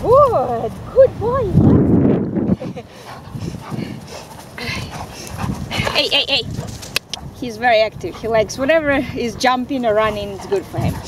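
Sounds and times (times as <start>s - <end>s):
woman laughing: 2.5s - 3.0s.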